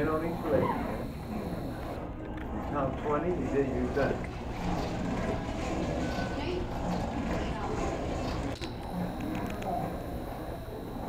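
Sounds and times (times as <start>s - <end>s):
exercise machine humming: 0.0s - 11.0s.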